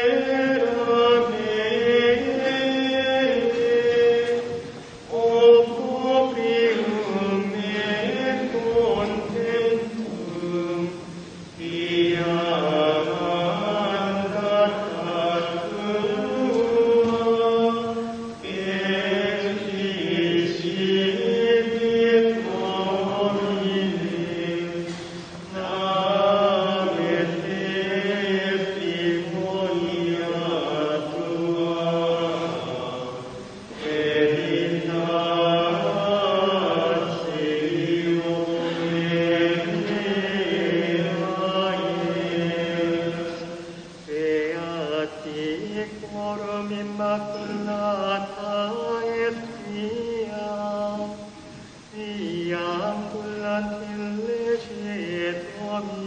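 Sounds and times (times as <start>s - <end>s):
monks chanting: 0.0s - 56.0s.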